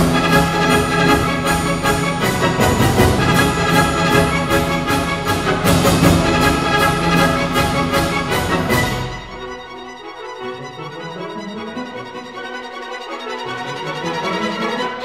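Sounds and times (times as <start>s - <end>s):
orchestral music with steady beat: 0.0s - 15.0s.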